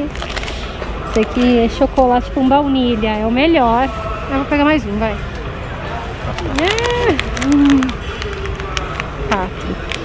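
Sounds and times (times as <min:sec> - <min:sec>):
plastic wrappers crinkling: 0:00.0 - 0:01.6, 0:06.2 - 0:10.0
supermarket background rumble: 0:00.0 - 0:10.0.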